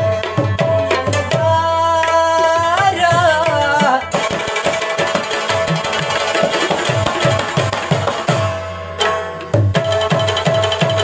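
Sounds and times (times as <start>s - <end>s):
hand-played barrel drum: 0.0s - 11.0s
tabla in lively rhythm: 0.0s - 11.0s.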